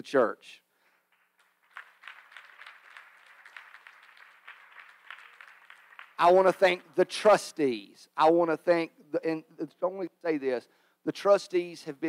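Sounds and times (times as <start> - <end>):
faint crowd applauding: 1.1 - 6.9.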